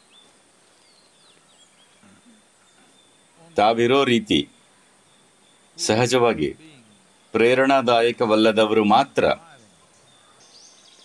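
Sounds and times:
faint chirp: 0.0 - 11.0
insect trill: 0.0 - 11.0
man speaking: 3.4 - 4.6, 5.8 - 9.8.

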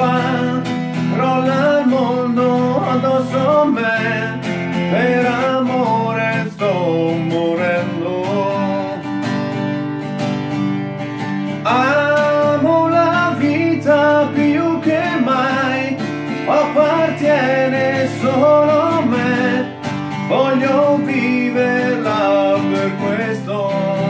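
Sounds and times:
man singing: 0.0 - 9.6, 11.5 - 24.0
acoustic guitar strumming: 0.0 - 24.0.

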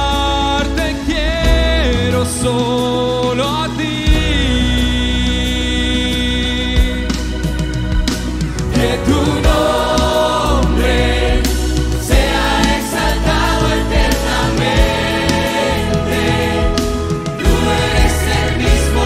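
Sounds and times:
band accompaniment with a beat: 0.0 - 19.0
choir singing a worship song: 0.0 - 19.0.

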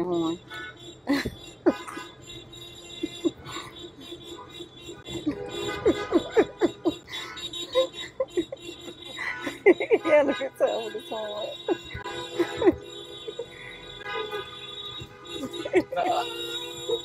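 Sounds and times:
people laughing: 5.2 - 10.6, 15.4 - 17.0.

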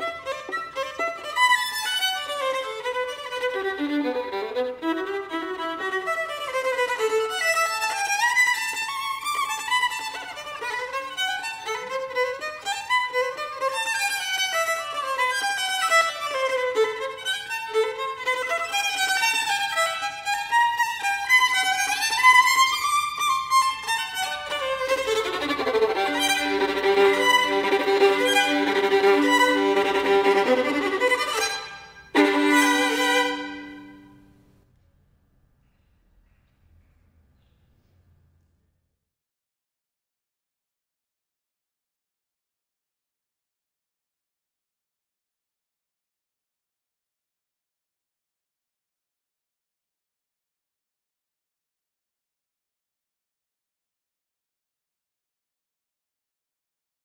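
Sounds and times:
violin playing folk melody: 0.0 - 34.3.

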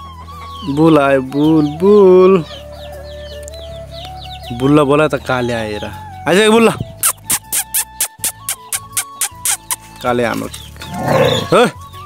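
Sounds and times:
chickens peeping and clucking: 0.0 - 6.2, 6.9 - 12.0
person calling chickens: 7.0 - 10.2.

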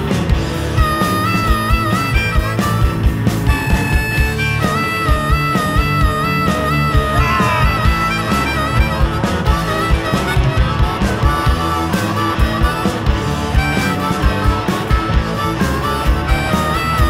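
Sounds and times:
bass: 0.0 - 17.0
drums keeping a steady beat: 0.0 - 17.0
electric guitars: 0.0 - 17.0
harmonica lead melody: 0.0 - 17.0.

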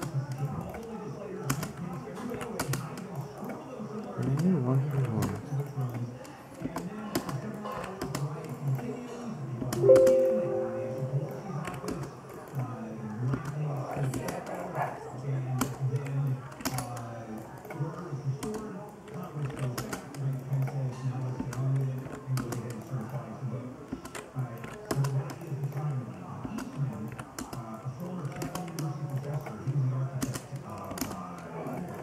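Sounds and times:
short steady tone: 9.8 - 11.4.

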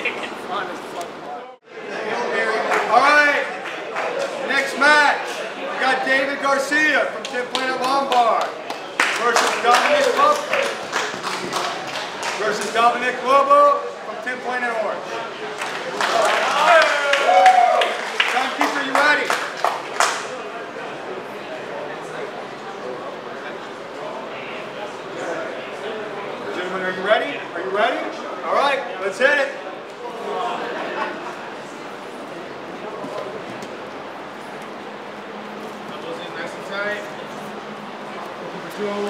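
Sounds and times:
hand claps: 7.2 - 12.8, 15.6 - 20.4.

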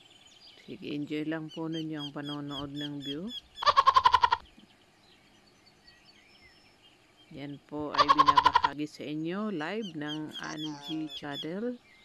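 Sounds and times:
faint bird chirps: 0.0 - 12.0
rapidly pulsing animal call: 2.1 - 4.5, 7.9 - 8.8.

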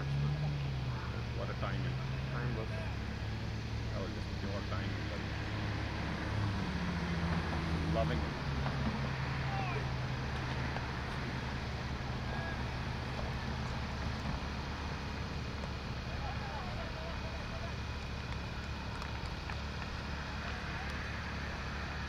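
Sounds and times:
faint distant voices: 0.0 - 6.0, 7.7 - 22.0
low outdoor rumble: 0.0 - 22.0.

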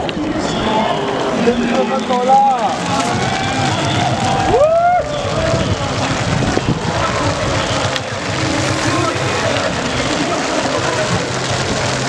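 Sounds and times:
crowd cheering: 0.0 - 12.0
loud rising and falling shout: 2.6 - 5.8.

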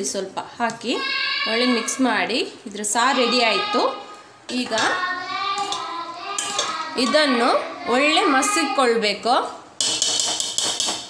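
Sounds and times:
woman talking: 0.0 - 5.0, 7.0 - 9.6
metal ladle clinking in a pot: 5.6 - 7.2, 9.8 - 11.0.

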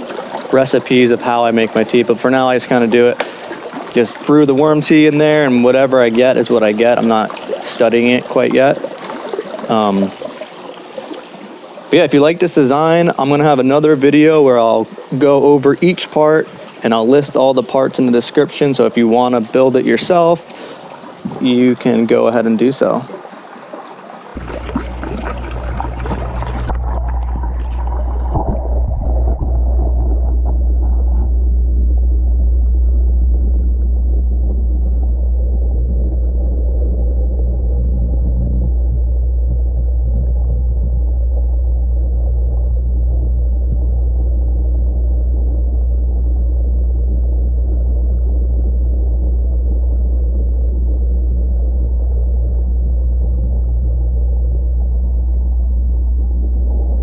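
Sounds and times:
muffled underwater rumble: 0.0 - 57.0
water splashing: 0.0 - 57.0.

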